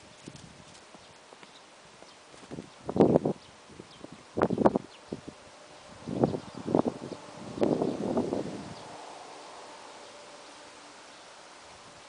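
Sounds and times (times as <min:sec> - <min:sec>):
horse hooves on grass: 0:00.0 - 0:05.5.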